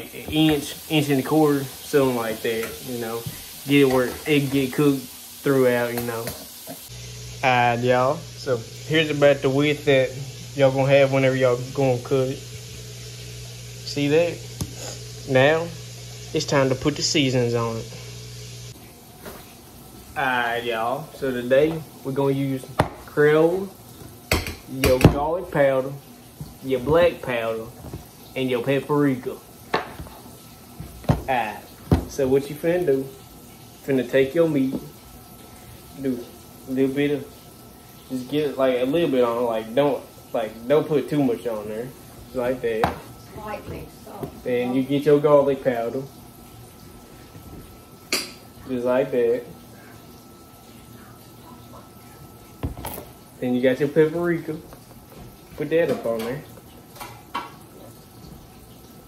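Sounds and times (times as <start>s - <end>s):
faint steady hiss: 0.0s - 19.4s.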